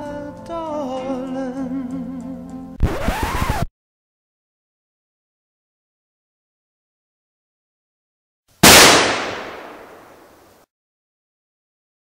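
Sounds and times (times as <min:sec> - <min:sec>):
gunshot: 0:08.6 - 0:10.4.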